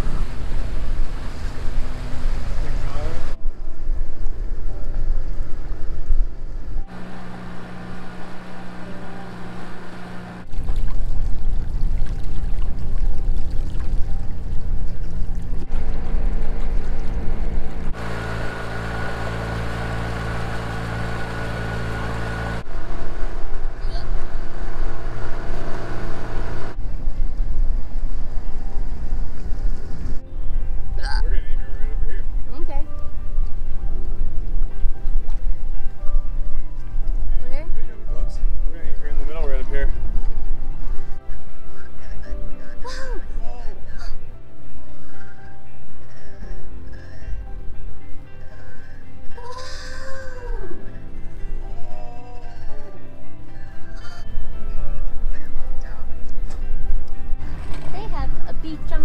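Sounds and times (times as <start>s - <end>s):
water rushing past hull: 0.0s - 3.4s
wind on microphone: 0.0s - 6.8s
boat engine running: 0.0s - 59.0s.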